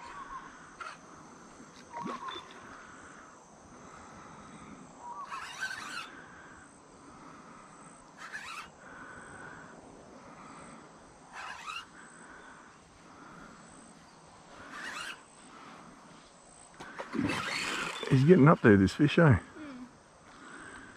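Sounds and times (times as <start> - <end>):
high insect drone: 0.0 - 20.9.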